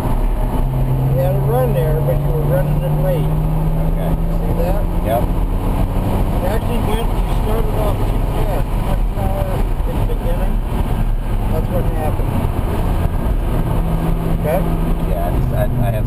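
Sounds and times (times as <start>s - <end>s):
car engine from inside cabin: 0.0s - 16.0s
road and wind noise: 0.0s - 16.0s.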